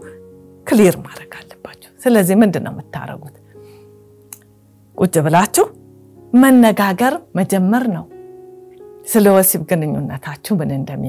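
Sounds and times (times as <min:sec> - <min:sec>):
soft music with held notes: 0:00.0 - 0:11.0
woman speaking: 0:00.7 - 0:03.4, 0:05.0 - 0:08.1.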